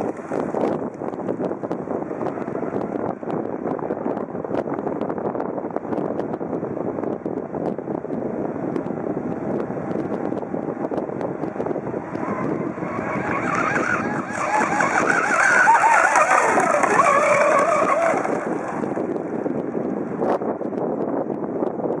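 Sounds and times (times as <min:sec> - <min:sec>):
high whine of boat motors: 0:00.0 - 0:22.0
steady rushing noise: 0:00.0 - 0:22.0.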